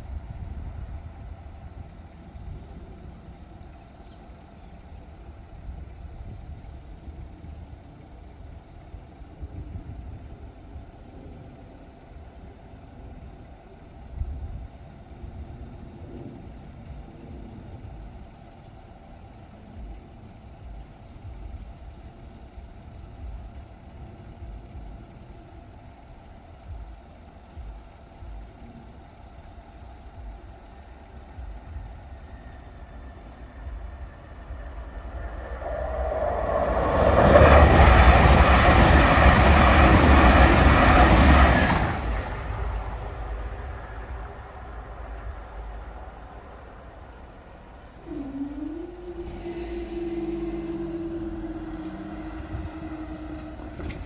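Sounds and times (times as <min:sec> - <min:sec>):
diesel train passing: 0:00.0 - 0:54.0.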